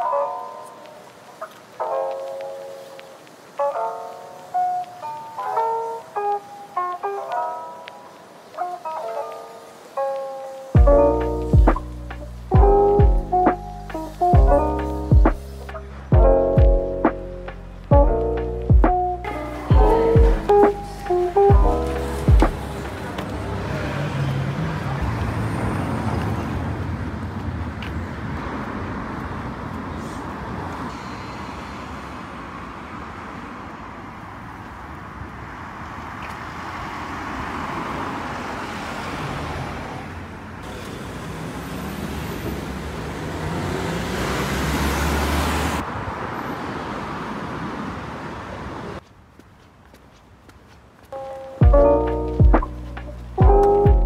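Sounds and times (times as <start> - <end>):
road traffic passing: 0.0 - 54.0.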